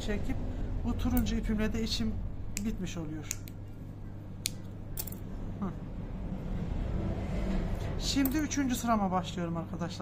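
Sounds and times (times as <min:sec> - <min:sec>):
snips clattering on wooden table: 0:04.5 - 0:05.3.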